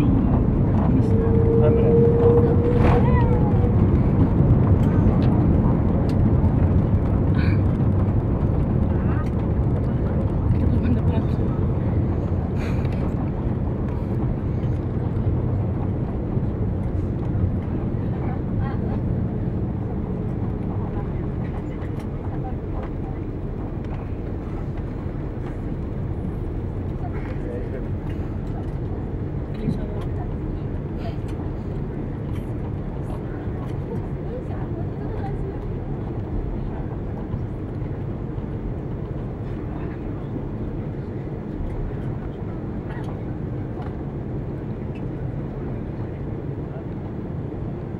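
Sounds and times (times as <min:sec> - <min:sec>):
aircraft cabin roar: 0:00.0 - 0:47.9.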